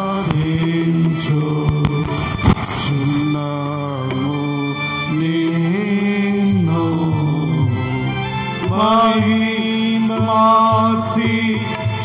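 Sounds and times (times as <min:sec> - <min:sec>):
person chanting devotional song: 0:00.0 - 0:12.0.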